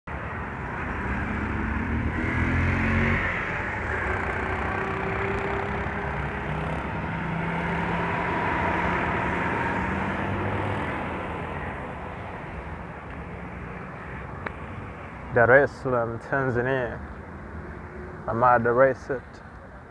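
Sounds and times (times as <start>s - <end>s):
motor traffic rumble: 0.1s - 19.9s.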